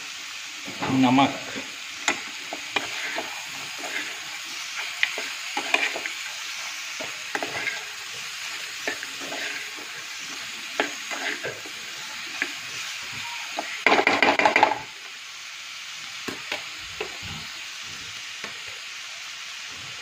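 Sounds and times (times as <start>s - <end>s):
meat and onions sizzling in pan: 0.0s - 20.0s
metal spoon scraping pan: 1.5s - 12.6s.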